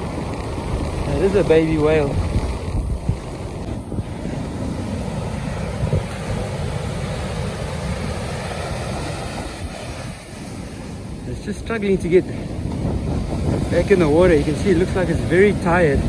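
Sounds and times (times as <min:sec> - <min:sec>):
surf breaking on beach: 0:00.0 - 0:16.0
wind buffeting microphone: 0:00.0 - 0:16.0.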